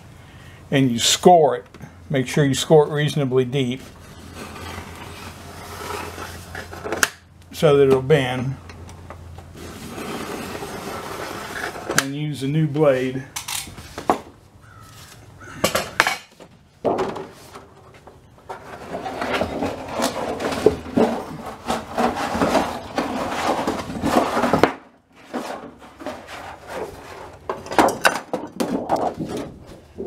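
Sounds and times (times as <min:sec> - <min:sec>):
knife scraping and crackling sheet: 0:04.1 - 0:07.1, 0:09.6 - 0:12.1.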